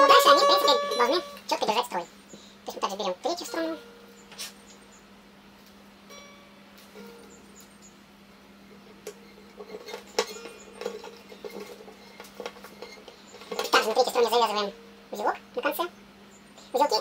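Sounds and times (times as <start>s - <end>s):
guitar string ringing: 0.0s - 1.6s, 3.4s - 4.3s, 6.0s - 7.9s, 8.7s - 14.1s.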